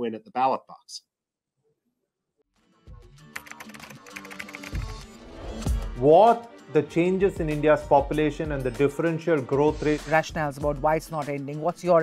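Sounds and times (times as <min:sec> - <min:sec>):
background music: 0:02.5 - 0:12.0.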